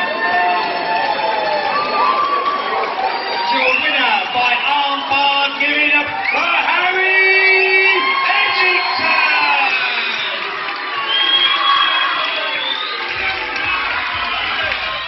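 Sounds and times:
crowd cheering and shouting: 0:00.0 - 0:15.0.

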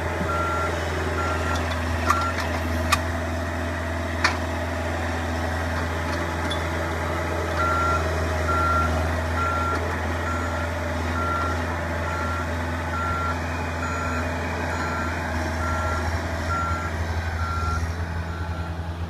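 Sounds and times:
forklift engine running: 0:00.0 - 0:19.0
forklift reversing alarm beeping: 0:00.2 - 0:02.5, 0:07.5 - 0:19.0.

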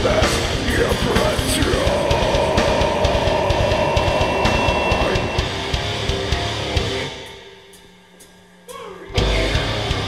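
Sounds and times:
distorted electric guitars: 0:00.0 - 0:10.0
rapid drum kit: 0:00.0 - 0:10.0
long held guitar note: 0:02.0 - 0:08.2.

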